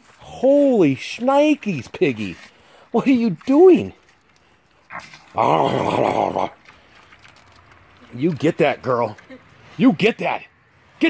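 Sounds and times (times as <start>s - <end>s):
pig grunting: 4.9s - 6.6s.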